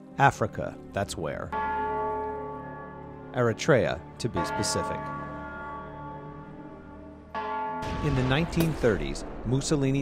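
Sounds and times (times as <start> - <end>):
church bell ringing: 0.5 - 10.0
heavy bang: 7.8 - 10.0.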